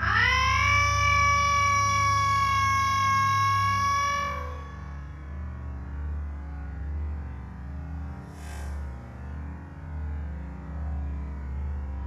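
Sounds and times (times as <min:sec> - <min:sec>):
high siren-like tone: 0:00.0 - 0:05.1
low hum: 0:00.0 - 0:12.0.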